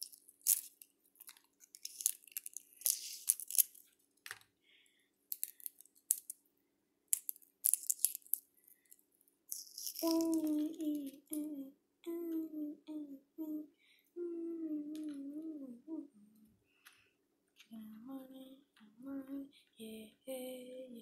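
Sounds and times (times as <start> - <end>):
egg shell cracking and peeling: 0.0 - 4.5, 5.3 - 6.4, 7.1 - 11.4.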